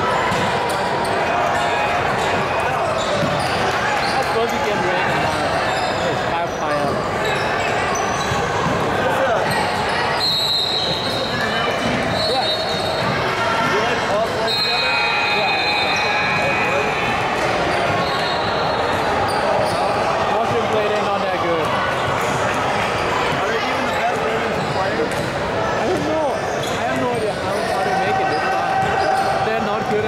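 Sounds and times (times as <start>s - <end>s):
unclear voices: 0.0s - 30.0s
sneaker squeals: 0.1s - 21.1s, 21.9s - 30.0s.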